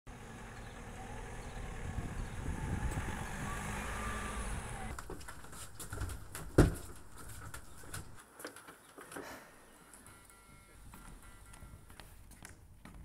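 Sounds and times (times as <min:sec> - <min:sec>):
vehicle passing rumble: 0:00.1 - 0:06.4.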